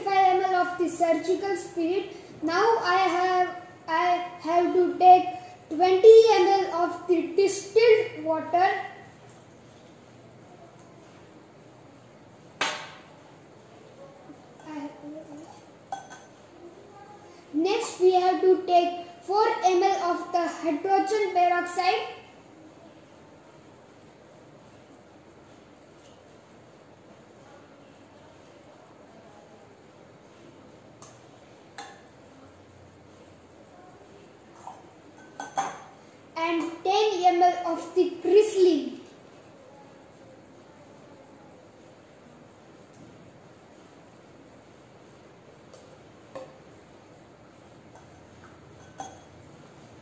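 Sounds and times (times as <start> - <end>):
boy speaking: 0.0 - 9.1, 14.6 - 15.6, 16.6 - 22.3, 36.4 - 39.1.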